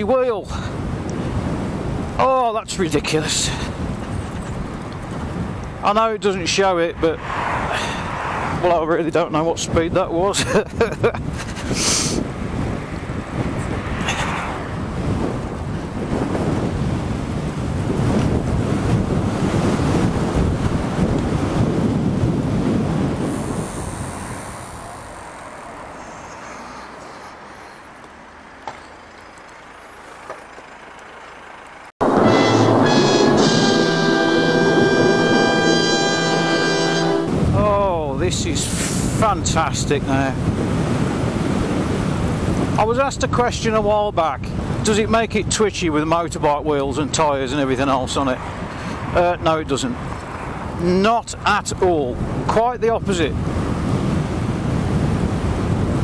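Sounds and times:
wind rush: 0:00.0 - 0:27.9, 0:32.0 - 0:56.0
electric bike road noise: 0:00.7 - 0:02.2, 0:03.6 - 0:05.8, 0:07.2 - 0:08.7, 0:11.2 - 0:35.7, 0:40.2 - 0:42.8, 0:48.4 - 0:49.2, 0:49.9 - 0:50.8, 0:53.3 - 0:56.0
held musical chord: 0:32.0 - 0:37.4.

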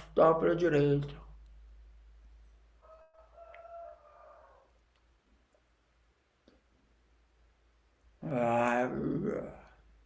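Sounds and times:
low steady hum: 0:00.0 - 0:03.3
rooster crowing: 0:02.8 - 0:04.8.

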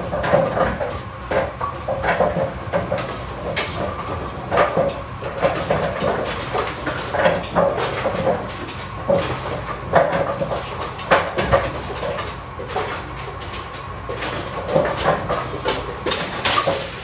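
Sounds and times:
pinsetter machinery noise: 0:00.0 - 0:17.0
clunks and knocks of pins: 0:00.1 - 0:17.0.

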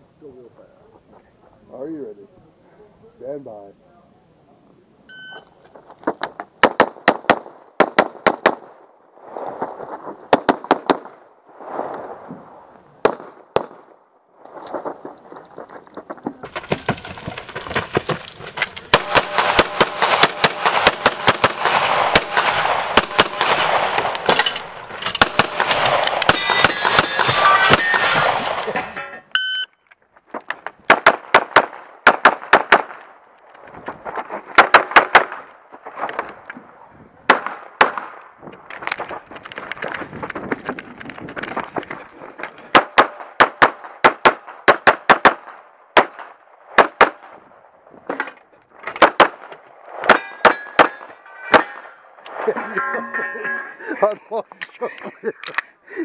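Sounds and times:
shot timer beep: 0:05.1 - 0:05.5, 0:29.3 - 0:29.7
pistol shots: 0:18.9 - 0:28.7, 0:30.9 - 0:33.1, 0:37.3 - 0:38.2, 0:42.7 - 0:47.4.

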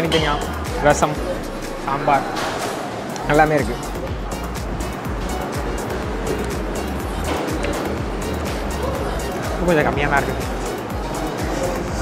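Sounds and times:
music with heavy bass beat: 0:00.0 - 0:02.2, 0:03.2 - 0:12.0.

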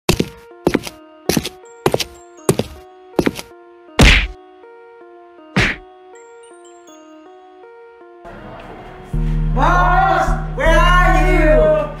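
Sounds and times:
mallet-like background music: 0:00.2 - 0:04.6, 0:05.6 - 0:08.3
heavy whacking hits: 0:04.0 - 0:04.4, 0:05.6 - 0:05.9.

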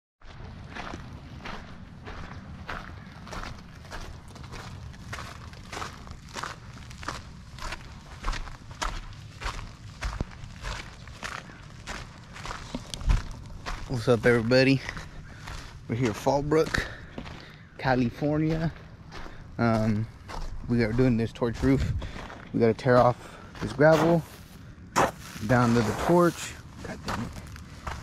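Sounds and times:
footsteps on gravel: 0:00.2 - 0:28.0.

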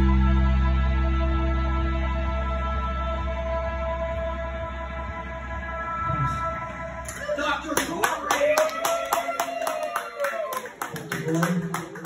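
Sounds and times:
audience clapping: 0:07.1 - 0:12.0.

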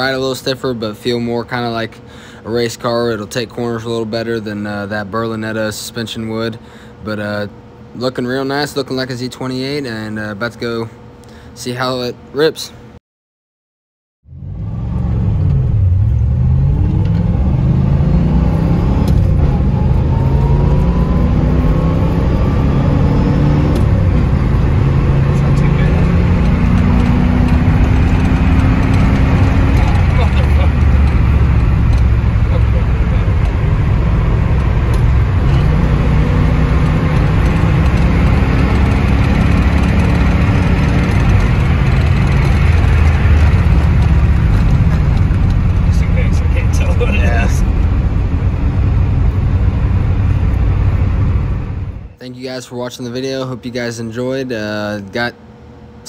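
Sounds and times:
road noise: 0:14.2 - 0:52.2
car engine accelerating: 0:14.3 - 0:52.2.

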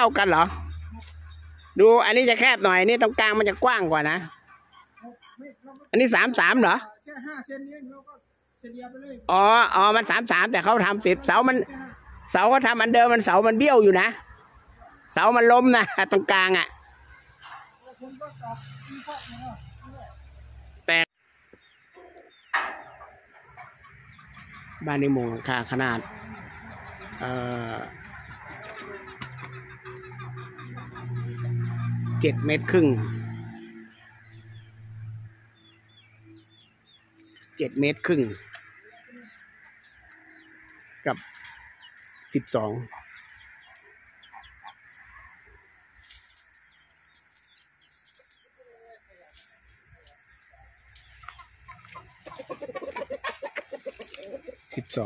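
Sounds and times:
chickens clucking: 0:00.0 - 0:06.9, 0:09.4 - 0:55.0
person speaking: 0:24.8 - 0:29.0.

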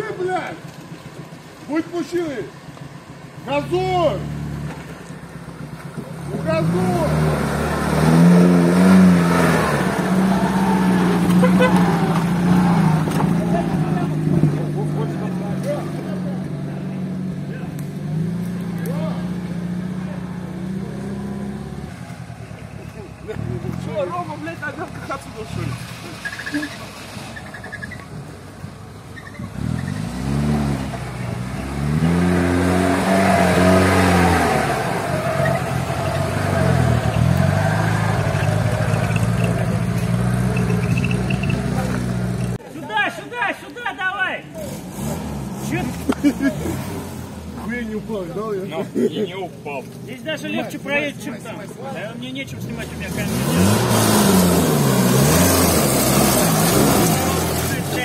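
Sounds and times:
engine labouring through mud: 0:00.0 - 0:42.6, 0:44.5 - 0:58.0
engine revving up and down: 0:06.2 - 0:16.0, 0:16.6 - 0:22.0, 0:29.4 - 0:42.6, 0:44.6 - 0:47.9, 0:52.6 - 0:58.0.

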